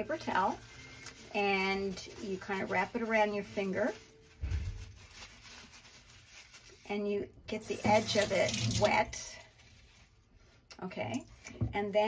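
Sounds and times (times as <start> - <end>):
paper towel rustling: 0.0 - 10.5.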